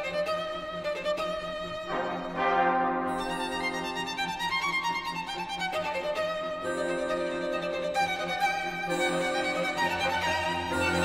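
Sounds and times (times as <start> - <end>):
solo violin: 0.0 - 11.0
brass section chord: 1.9 - 4.3.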